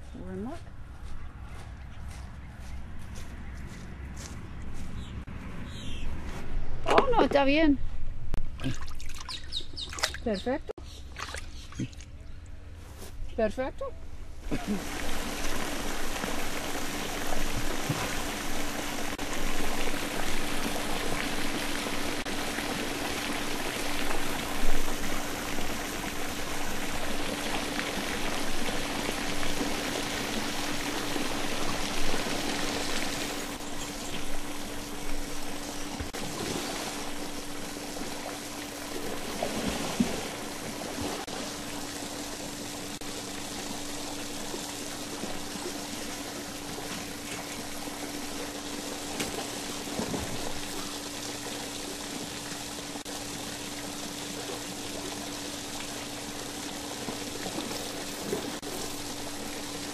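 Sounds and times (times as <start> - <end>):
faint constant hum: 0.0 - 59.9
water splashing into pool: 8.4 - 10.3, 11.0 - 12.1, 14.5 - 59.9.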